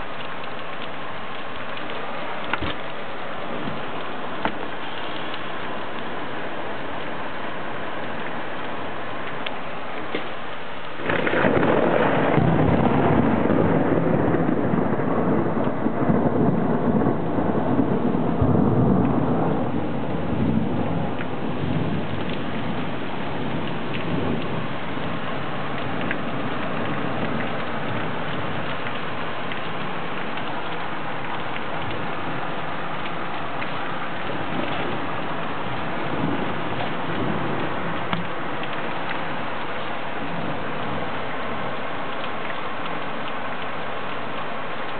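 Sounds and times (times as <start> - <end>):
steady rain: 0.0 - 44.9
thunder rumbling: 10.3 - 44.9.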